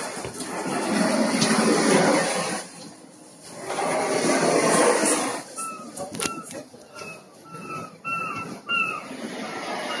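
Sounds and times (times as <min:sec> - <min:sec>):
high whining animal call: 0:05.5 - 0:10.0.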